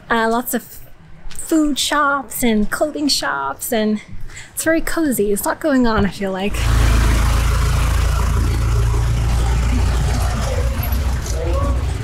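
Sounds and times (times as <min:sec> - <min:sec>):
van engine low drone: 0:06.5 - 0:12.0.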